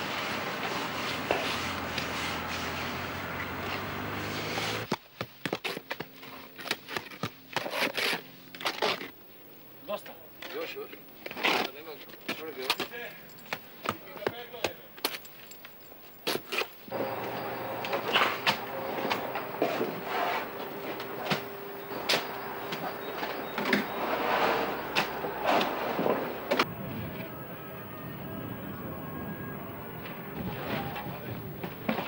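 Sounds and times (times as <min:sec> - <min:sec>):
building site din: 0:00.0 - 0:05.0, 0:16.9 - 0:27.8
held hum: 0:16.9 - 0:32.0.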